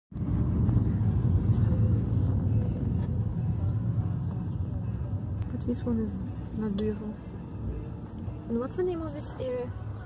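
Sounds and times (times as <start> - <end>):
car road rumble from inside: 0.1 - 10.0.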